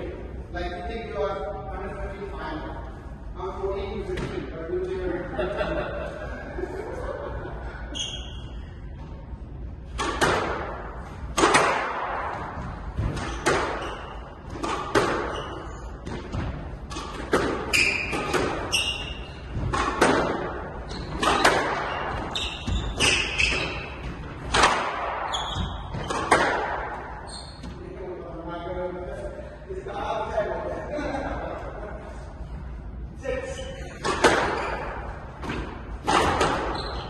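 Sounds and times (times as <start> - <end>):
shoe squeaking on wooden floor: 13.3 - 14.4, 15.2 - 16.0, 17.6 - 19.6, 20.8 - 24.2, 25.3 - 26.2, 27.2 - 27.8, 36.6 - 37.0.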